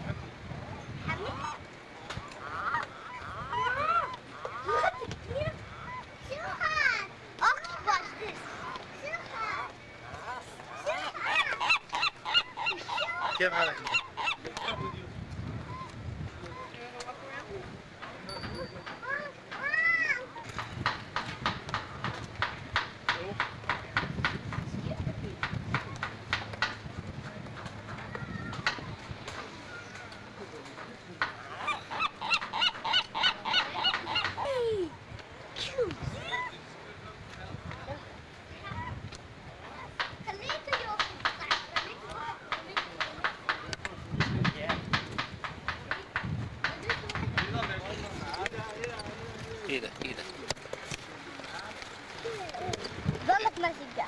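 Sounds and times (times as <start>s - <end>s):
gulls calling: 0.0s - 24.0s, 25.4s - 37.0s
gull calling: 1.0s - 6.6s, 9.6s - 15.0s, 15.6s - 16.8s, 31.3s - 35.0s.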